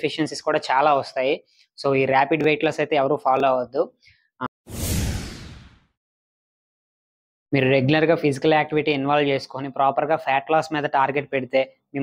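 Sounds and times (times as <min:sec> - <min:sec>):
whoosh: 0:04.7 - 0:06.0.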